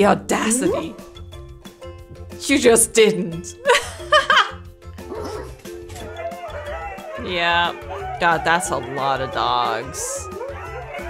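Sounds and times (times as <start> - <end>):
background music: 0.0 - 11.0
huskies howling: 5.0 - 11.0.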